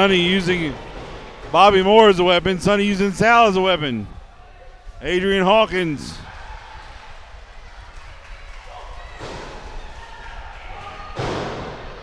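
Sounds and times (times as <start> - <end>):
crowd murmur: 0.0 - 12.0
slam-like impact: 11.2 - 12.0.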